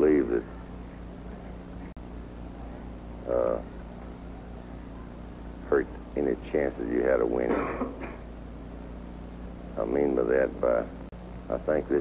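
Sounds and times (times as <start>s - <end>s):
recording hiss and hum: 0.0s - 12.0s.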